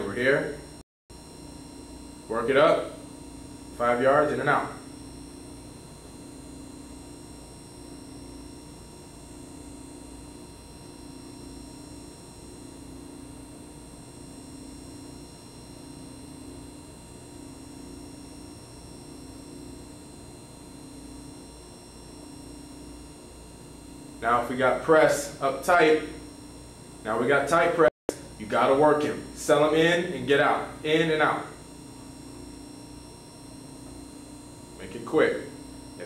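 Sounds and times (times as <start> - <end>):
electrical hum and hiss: 0.0 - 36.0.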